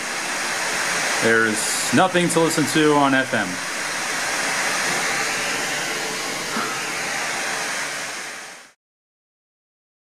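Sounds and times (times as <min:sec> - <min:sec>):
radio static hiss: 0:00.0 - 0:08.8.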